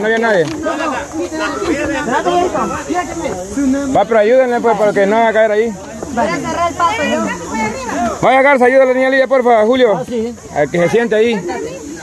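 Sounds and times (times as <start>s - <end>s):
people talking and calling: 0.0s - 12.0s
steady hiss: 0.3s - 12.0s.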